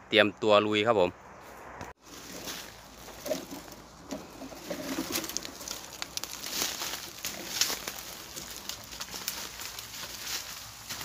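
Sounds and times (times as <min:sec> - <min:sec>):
light crackling and rustling: 0:01.8 - 0:11.0.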